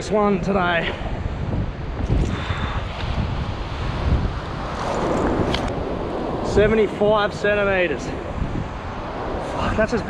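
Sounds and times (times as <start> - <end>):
wind buffeting microphone: 0.0 - 10.0
breaking surf: 1.5 - 10.0.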